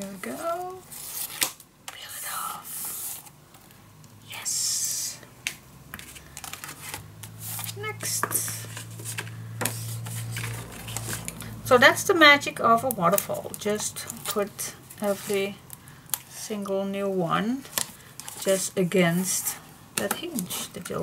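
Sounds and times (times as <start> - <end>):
cardstock sliding and rustling: 6.0 - 11.4.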